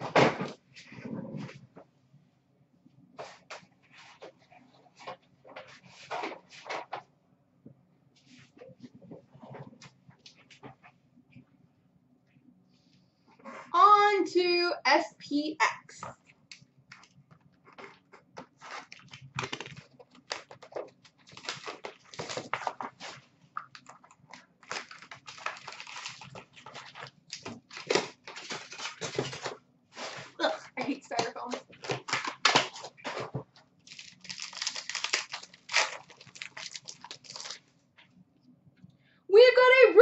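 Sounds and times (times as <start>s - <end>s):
wrapper crinkling and ripping: 17.8s - 30.4s, 31.1s - 37.7s.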